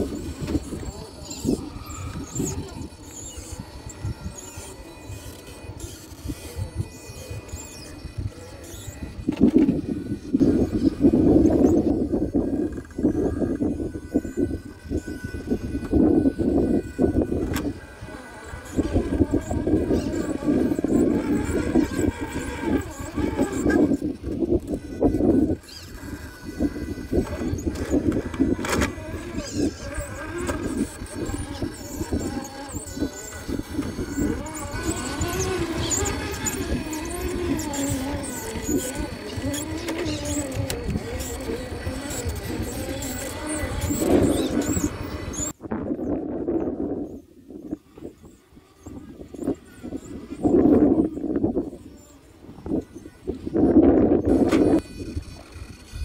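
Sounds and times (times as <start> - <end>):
toy car electric motor whining: 0.0 - 56.0.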